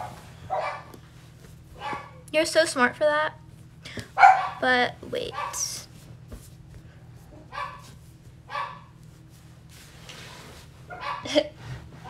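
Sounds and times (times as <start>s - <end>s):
dog barking: 0.0s - 0.9s, 1.8s - 2.2s, 4.2s - 4.6s, 5.3s - 5.7s, 7.5s - 7.9s, 8.5s - 8.9s, 10.9s - 11.3s.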